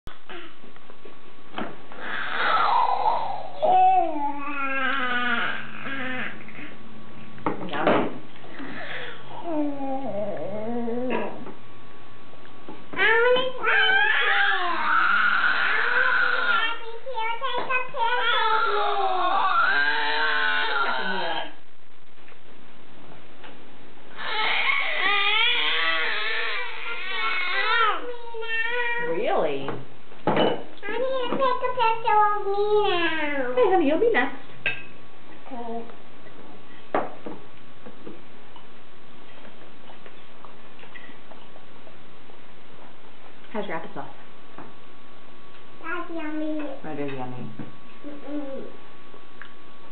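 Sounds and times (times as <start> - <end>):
steady background hiss: 0.2 - 49.9
baby wailing into glass cup: 18.2 - 21.4, 24.2 - 28.0.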